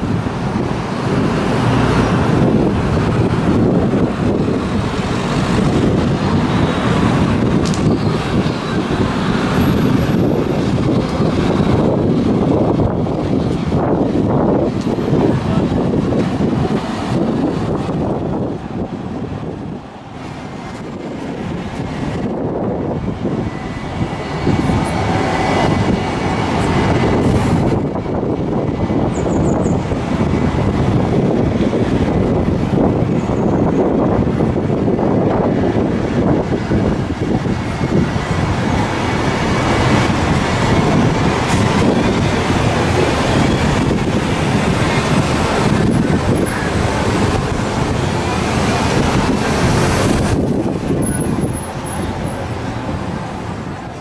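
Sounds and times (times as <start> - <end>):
cars and buses passing: 0.0 - 54.0.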